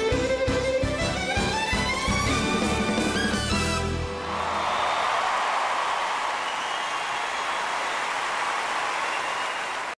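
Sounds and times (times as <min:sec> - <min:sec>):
audience applauding and cheering: 0:03.5 - 0:09.9.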